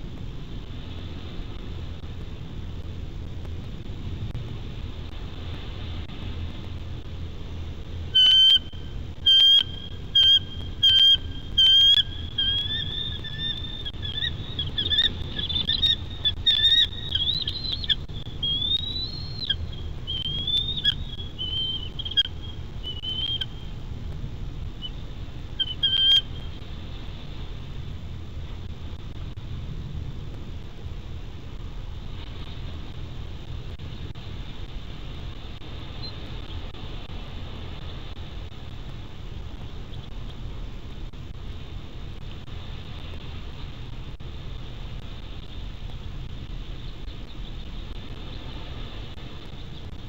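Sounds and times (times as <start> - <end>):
low wind rumble: 0.0 - 50.0
eagle chirping calls: 8.2 - 23.6, 25.6 - 26.5.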